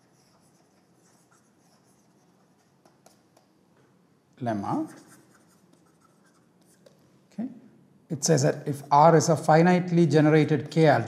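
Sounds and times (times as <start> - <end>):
stylus scratching on tablet: 0.0 - 3.5, 4.6 - 7.0.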